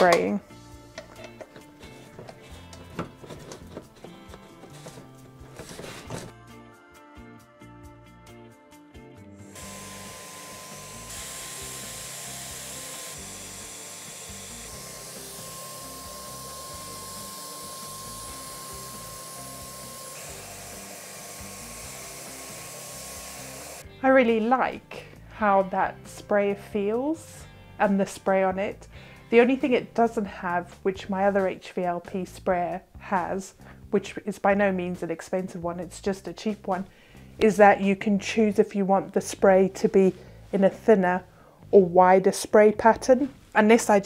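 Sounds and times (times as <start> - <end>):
paint sprayer turbine hissing: 9.5 - 23.8.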